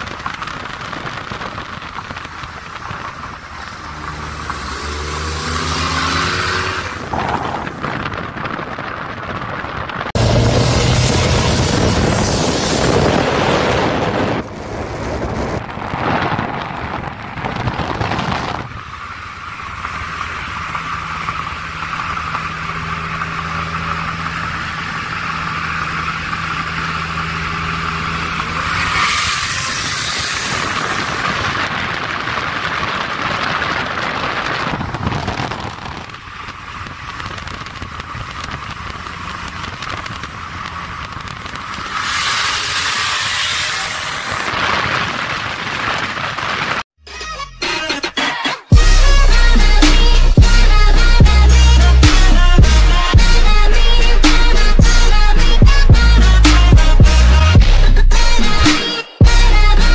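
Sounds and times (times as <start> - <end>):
low engine drone: 0.0 - 31.8, 48.7 - 59.9
car road and wind noise: 0.0 - 47.0, 48.7 - 59.9.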